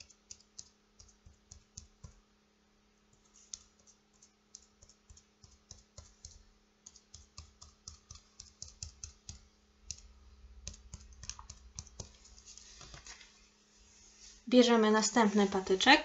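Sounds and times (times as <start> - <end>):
cotton swab tapping paper: 0.0 - 2.2, 3.2 - 13.2.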